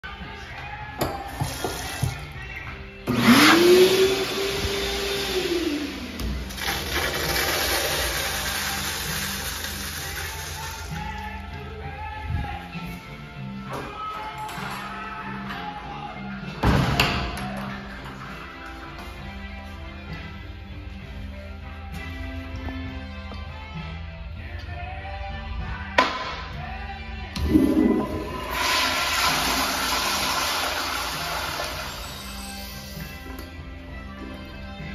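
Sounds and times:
toilet flushing: 4.3 - 10.8, 27.4 - 32.4
urinal flushing water rush: 27.4 - 32.0.

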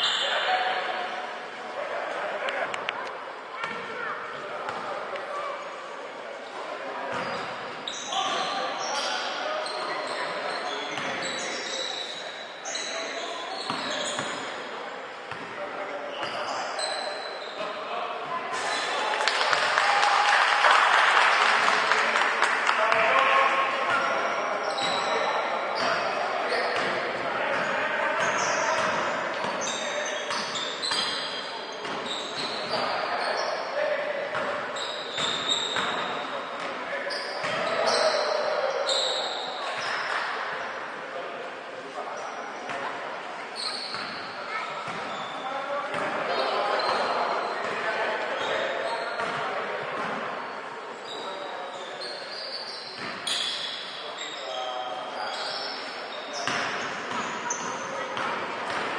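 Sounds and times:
sneakers squeaking: 0.0 - 1.3, 3.6 - 5.6, 6.4 - 19.0, 23.9 - 40.8, 42.2 - 58.9.

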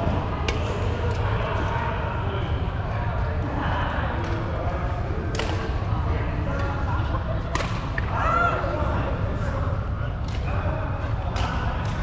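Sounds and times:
murmur of voices: 0.0 - 12.0.

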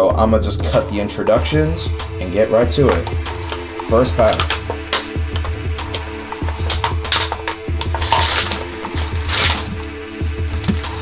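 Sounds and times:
background music with steady beat: 0.0 - 11.0
cards clicking: 2.9 - 9.9
foil packaging crinkling and tearing: 6.6 - 11.0.

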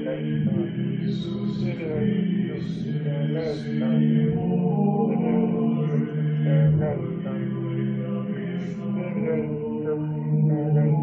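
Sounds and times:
slow chanted mantra: 0.0 - 11.0
steady low drone: 0.0 - 11.0.

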